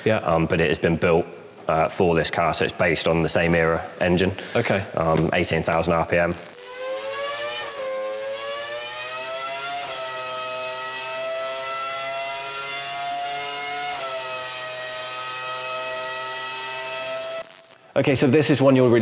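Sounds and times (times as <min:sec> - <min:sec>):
racing car engine wailing: 0:06.7 - 0:17.6.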